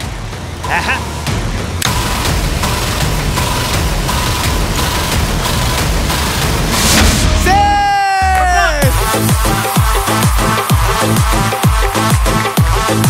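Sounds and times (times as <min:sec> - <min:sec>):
noisy suspense wash: 0:00.0 - 0:13.0.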